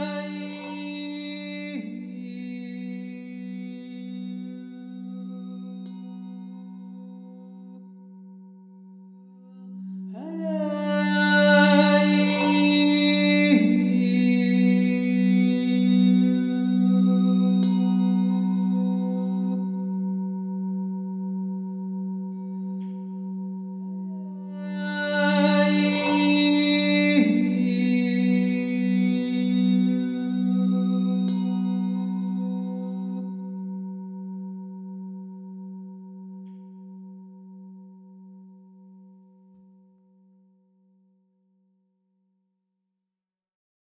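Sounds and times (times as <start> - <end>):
singing bowl ringing: 0.0 - 41.1.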